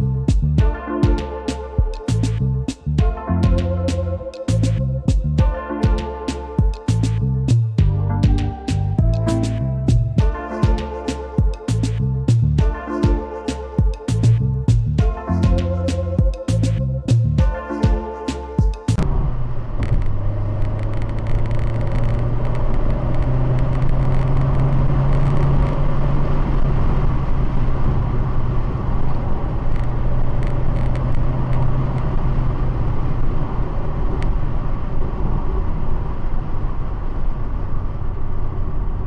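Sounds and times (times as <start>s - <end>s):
car engine and road noise: 0.0s - 39.0s.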